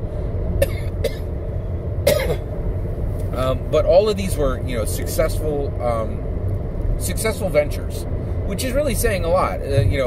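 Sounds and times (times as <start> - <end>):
car cabin rumble: 0.0 - 10.0
man coughing: 0.6 - 1.3, 2.0 - 2.5.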